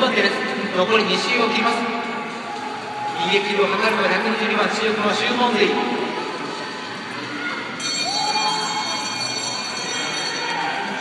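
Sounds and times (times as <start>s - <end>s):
arena crowd noise: 0.0s - 11.0s
bell ringing: 7.8s - 11.0s.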